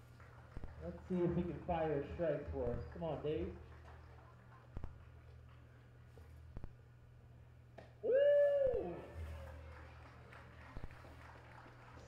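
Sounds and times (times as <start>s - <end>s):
faint crowd noise: 0.0s - 12.0s
person cheering loudly: 8.0s - 9.2s.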